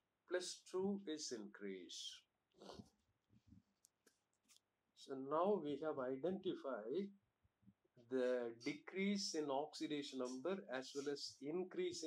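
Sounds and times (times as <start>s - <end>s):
spoken word: 5.0s - 7.0s, 8.2s - 12.0s.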